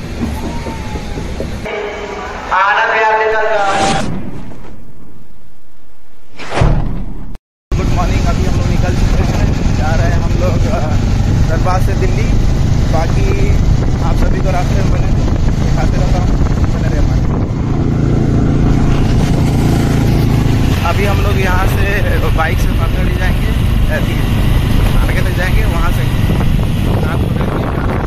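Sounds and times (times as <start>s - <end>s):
wind noise on microphone: 7.7s - 28.0s
motorcycle engine running: 7.8s - 28.0s.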